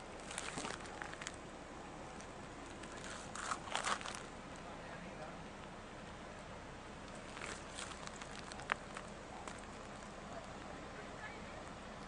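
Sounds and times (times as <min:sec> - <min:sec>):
low steady hiss: 0:00.0 - 0:12.0
small crackles and clicks: 0:00.2 - 0:01.4, 0:07.0 - 0:10.7.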